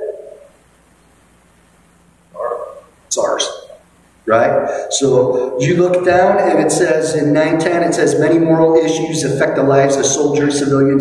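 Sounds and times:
faint steady hum: 0.0s - 11.0s
man's voice echoing: 2.4s - 11.0s.

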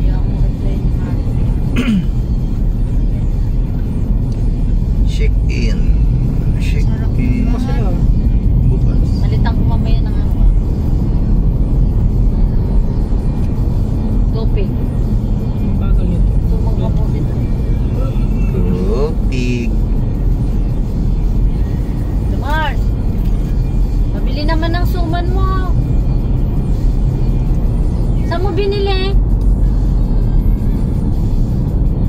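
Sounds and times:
car road and engine rumble: 0.0s - 32.0s
music: 11.6s - 32.0s
voices: 15.7s - 19.8s.

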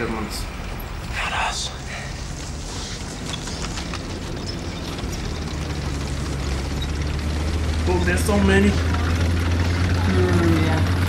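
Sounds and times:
low rumble of tank engines: 0.0s - 11.0s.

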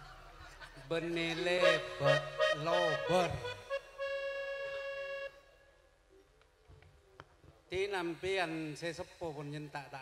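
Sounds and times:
faint background noise: 0.0s - 10.0s
steady musical note: 1.6s - 5.5s.

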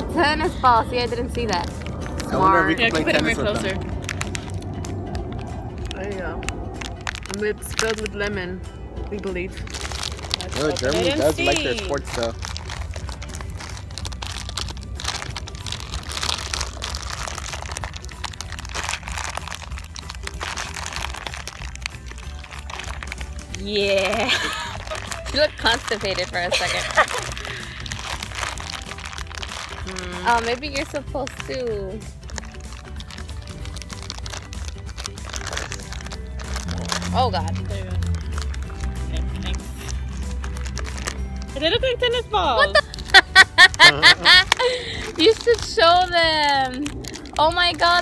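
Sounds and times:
background music: 0.0s - 48.0s
plastic wrapper crinkling: 1.1s - 8.4s, 9.5s - 41.8s, 42.7s - 48.0s.

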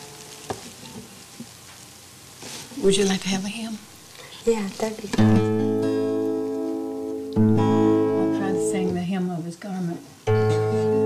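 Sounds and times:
analogue recording hiss: 0.0s - 11.0s.

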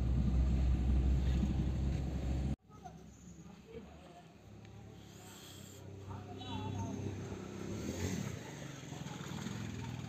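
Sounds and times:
car engine and tyres rumble: 0.0s - 2.6s, 5.8s - 10.0s.

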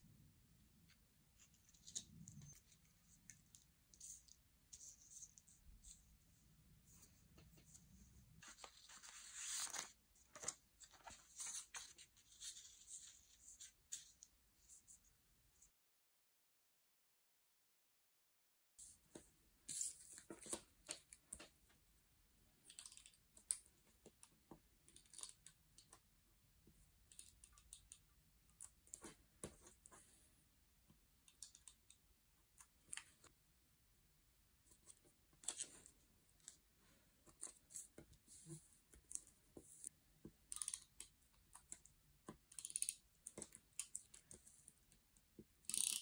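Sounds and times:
paper rustling and sliding: 8.4s - 13.7s.

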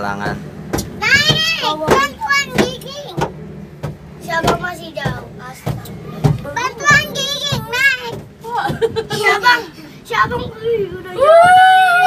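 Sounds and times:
girls chattering and calling out: 0.9s - 11.6s.

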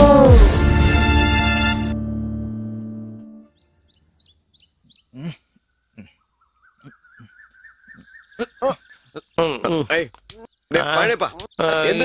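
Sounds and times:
music track: 0.0s - 3.5s
bird trill: 3.4s - 9.6s
birds chirping: 3.4s - 12.0s.

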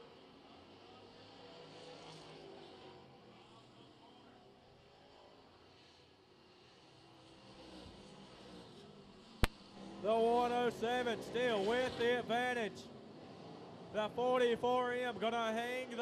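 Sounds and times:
distant race car engines: 0.0s - 16.0s.

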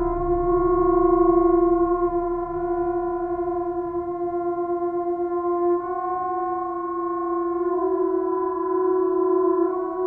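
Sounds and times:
low rumble: 0.0s - 4.5s
orchestral-electronic drone: 0.0s - 8.6s.

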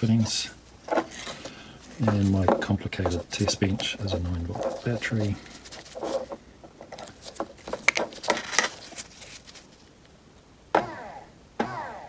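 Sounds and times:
clip leads clicking and scraping: 0.1s - 10.1s.

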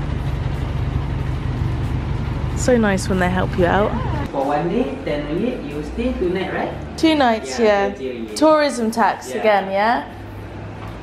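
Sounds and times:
van engine idling: 0.0s - 4.3s.

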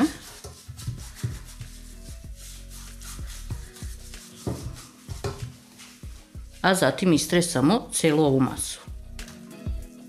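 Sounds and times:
pastry brush rubbing baking pan: 0.0s - 6.8s
soft background music: 0.0s - 10.0s.

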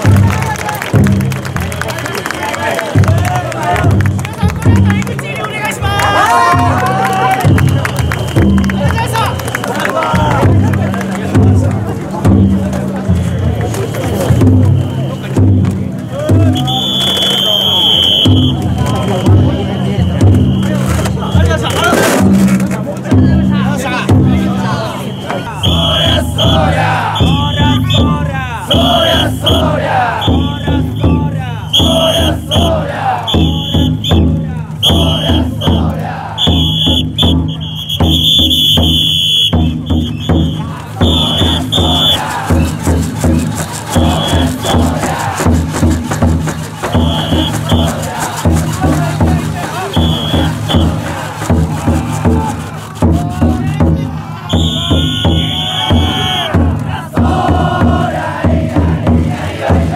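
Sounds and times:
big drum beating: 0.0s - 1.7s, 2.8s - 9.3s, 10.1s - 59.9s
crowd shouting and chanting: 0.0s - 59.9s
shrill whistle blasts: 7.3s - 9.9s, 14.3s - 15.4s, 16.4s - 21.5s, 24.8s - 42.8s, 44.0s - 44.9s, 46.9s - 48.0s, 49.8s - 51.0s, 54.5s - 56.6s.

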